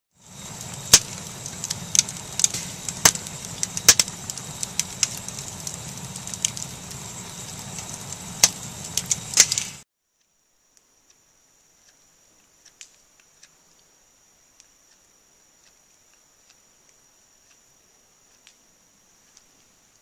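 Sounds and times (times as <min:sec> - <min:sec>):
sharp pops of fire: 0:00.2 - 0:09.8
wood fire crackling: 0:00.2 - 0:09.8.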